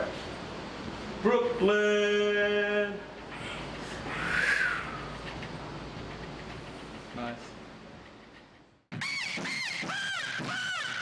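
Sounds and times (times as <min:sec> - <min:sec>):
short rising and falling calls: 0:03.4 - 0:05.2.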